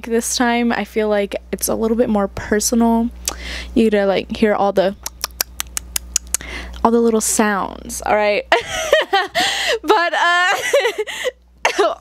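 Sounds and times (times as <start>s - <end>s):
small sharp clicks at microphone: 5.0s - 6.9s.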